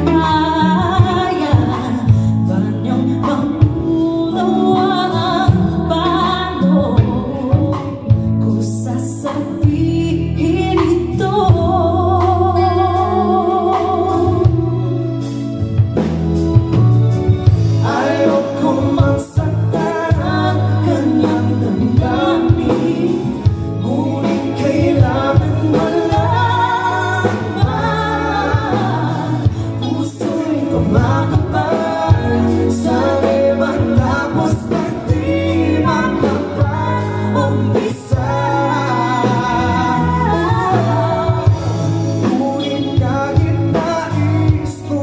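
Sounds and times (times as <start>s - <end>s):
man and woman singing duet: 0.0s - 15.6s, 17.4s - 45.0s
live band playing: 0.0s - 45.0s.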